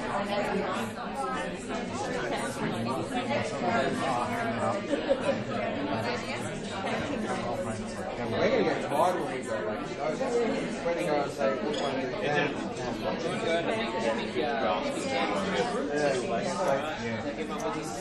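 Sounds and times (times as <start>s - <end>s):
hubbub of overlapping conversations: 0.0s - 18.0s.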